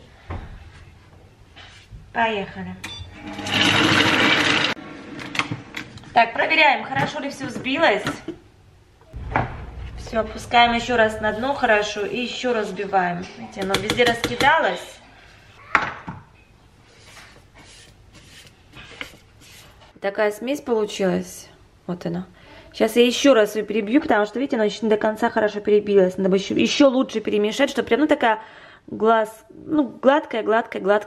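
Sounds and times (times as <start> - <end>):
food processor blade spinning: 3.2 - 4.8
sharp knock: 9.2 - 10.2
spatula scraping steel bowl: 17.0 - 19.9.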